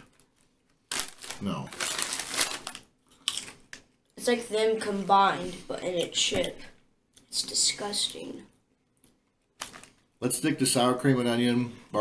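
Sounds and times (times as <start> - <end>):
foil chip bag crinkling: 0.9 - 3.6, 9.6 - 10.1.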